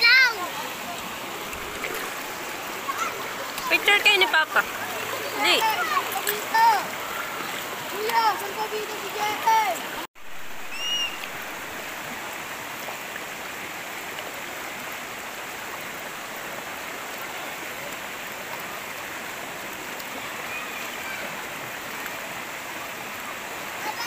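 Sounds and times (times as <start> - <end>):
river water rushing over rocks: 0.0 - 24.0.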